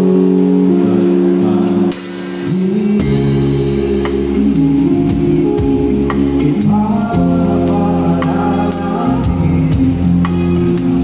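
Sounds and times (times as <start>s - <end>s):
band holding a chord: 0.0s - 11.0s.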